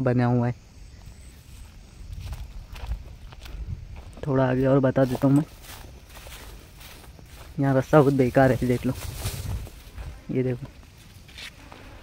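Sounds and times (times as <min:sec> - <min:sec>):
footsteps on stony path: 0:01.0 - 0:12.0.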